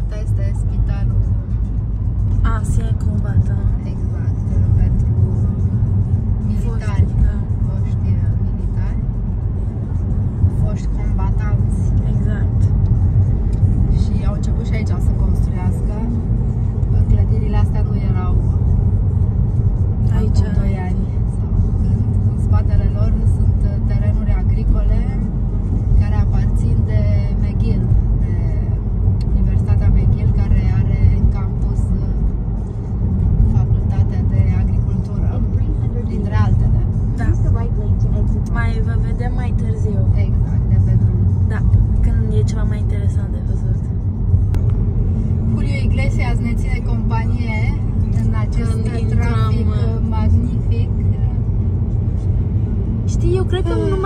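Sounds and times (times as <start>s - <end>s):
car cabin road and engine rumble: 0.0s - 54.0s
voice or singing from car audio: 53.2s - 54.0s.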